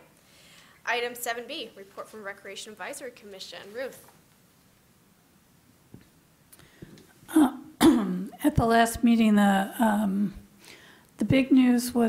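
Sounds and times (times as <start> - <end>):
woman clearing throat: 7.3 - 8.4.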